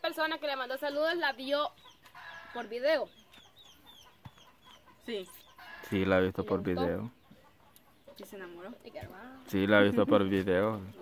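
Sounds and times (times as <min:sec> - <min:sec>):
chickens peeping: 0:00.6 - 0:11.0.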